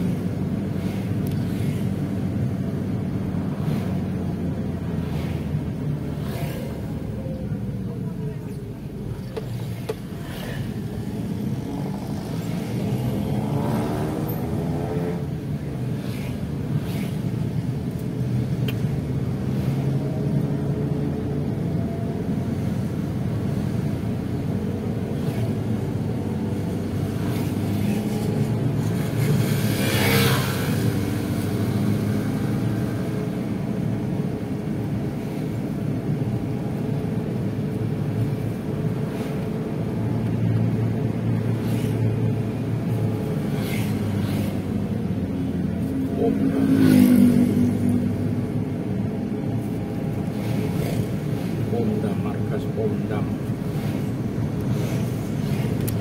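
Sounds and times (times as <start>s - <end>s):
motorcycles: 0.0s - 56.0s
vehicle engine and road noise: 0.0s - 56.0s.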